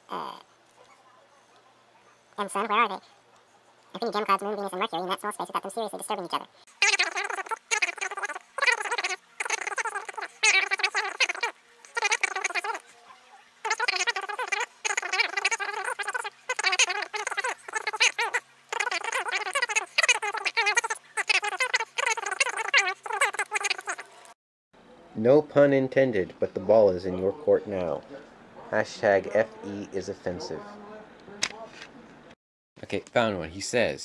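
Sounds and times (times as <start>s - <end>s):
sped-up high-pitched speech: 4.0s - 12.9s
sped up squeaky voice chatter: 4.0s - 24.4s.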